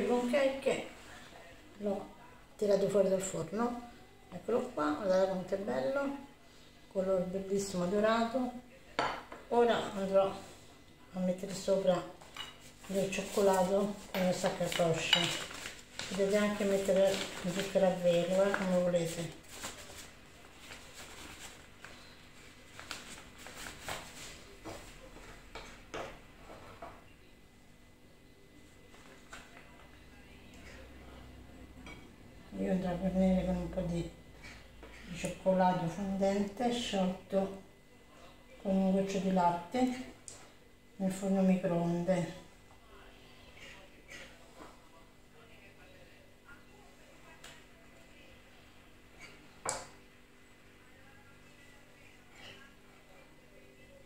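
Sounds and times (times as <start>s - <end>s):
piping bag rustling and clicking: 13.0s - 22.0s.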